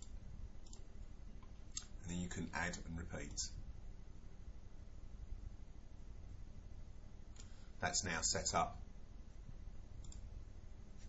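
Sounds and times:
computer mouse click: 0.0 - 0.9, 10.0 - 10.3
faint low hum: 0.0 - 11.0.

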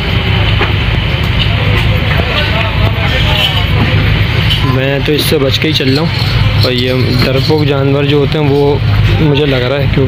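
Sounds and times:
faint indistinct voices: 0.0 - 10.0
steady low drone: 0.0 - 10.0.

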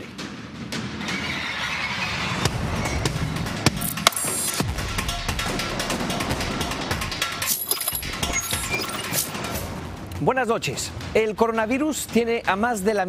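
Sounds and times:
dramatic theme music: 0.1 - 13.0
sharp percussive hits: 2.4 - 9.9.

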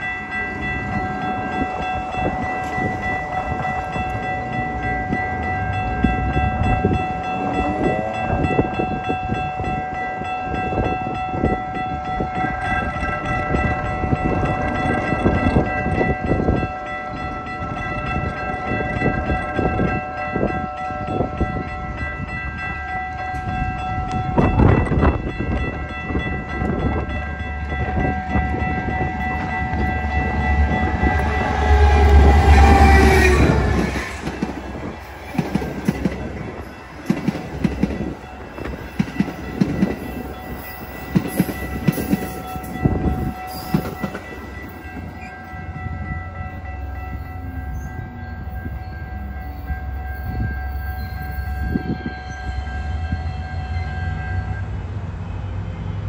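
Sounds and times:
train rumble: 0.0 - 56.0
train horn: 7.0 - 9.0, 29.0 - 34.6
train cars clacking over rail joints: 23.3 - 50.5.

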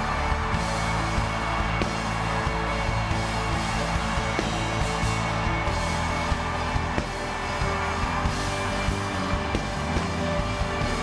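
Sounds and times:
worship band music: 0.0 - 11.0.

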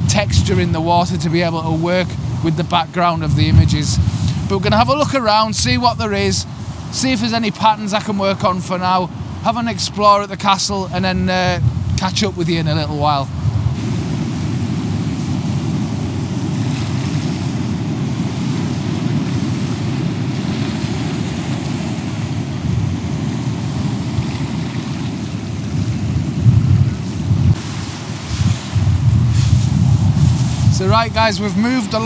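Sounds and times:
waves breaking on rocky shore: 0.0 - 32.0
wind buffeting microphone: 0.0 - 32.0.

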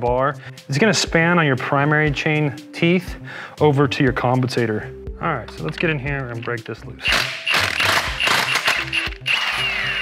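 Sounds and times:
impact wrench rattling: 5.6 - 9.2
motor whine winding down: 7.5 - 10.0.

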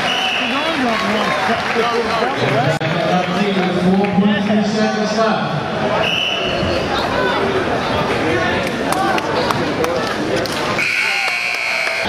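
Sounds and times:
people talking: 0.4 - 5.5.

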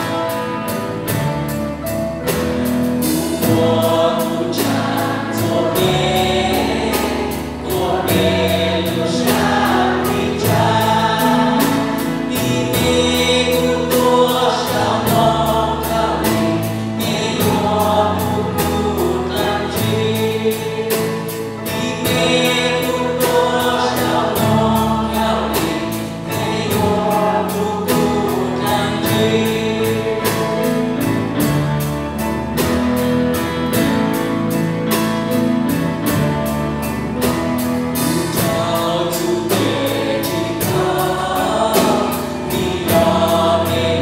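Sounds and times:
bass guitar: 0.0 - 44.0
drums steady beat: 0.0 - 44.0
electric and acoustic guitars: 0.0 - 44.0
man singing into microphone: 3.3 - 30.8, 38.0 - 44.0.

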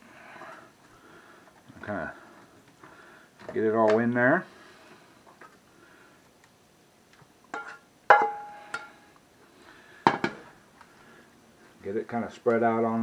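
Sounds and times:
spatula knocking on skillet: 7.6 - 8.9.

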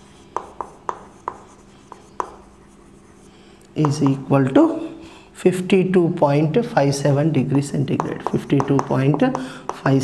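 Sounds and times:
chalk scraping strokes: 0.0 - 3.5
chalk tapping on chalkboard: 0.2 - 4.3, 7.5 - 10.0.

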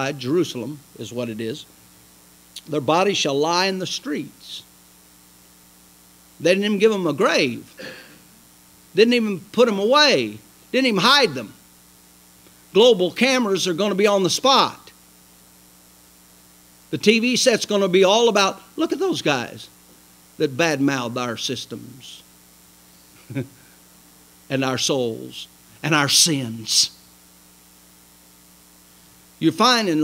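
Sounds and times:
faint electrical hum: 0.0 - 30.0
light hiss: 0.0 - 30.0.

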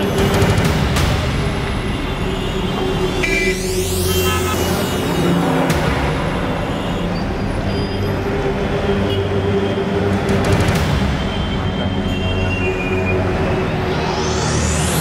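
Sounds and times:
dramatic score music: 0.0 - 15.0
street traffic noise: 0.0 - 15.0
sweeping whoosh: 12.7 - 15.0.

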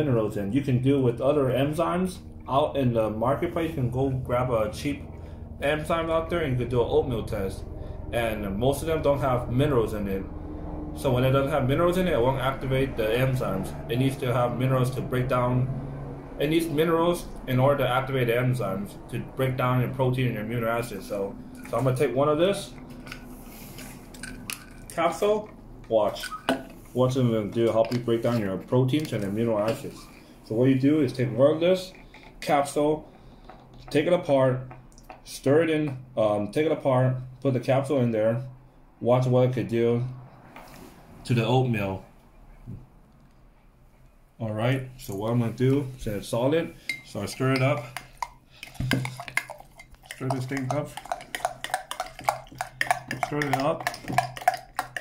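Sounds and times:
spoon clinking against glass: 46.9 - 55.0.

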